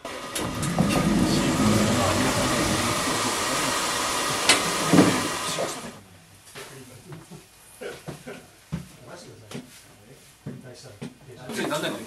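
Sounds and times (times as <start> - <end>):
train car rushing hiss: 0.0 - 6.0.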